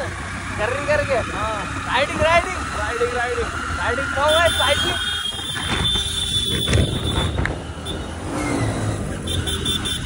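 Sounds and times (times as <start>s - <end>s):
motorcycle engine and road rumble: 0.0s - 10.0s.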